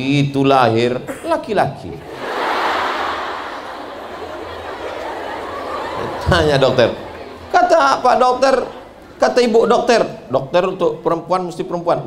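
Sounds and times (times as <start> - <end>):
audience laughing: 2.0 - 9.6.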